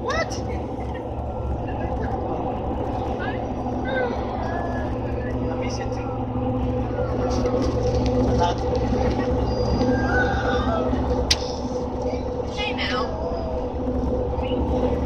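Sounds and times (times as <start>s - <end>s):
car road and engine noise: 0.0s - 15.0s
faint indistinct voices: 0.0s - 15.0s.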